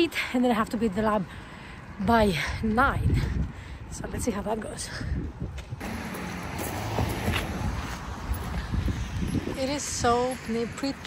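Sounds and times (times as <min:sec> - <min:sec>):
passing road traffic: 0:00.0 - 0:11.0
wind on microphone: 0:02.5 - 0:06.0, 0:06.9 - 0:11.0.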